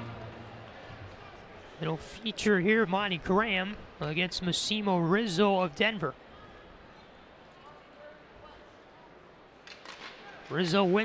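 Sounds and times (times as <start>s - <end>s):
faint crowd murmur: 0.0s - 11.0s
sharp clacks: 9.6s - 10.2s.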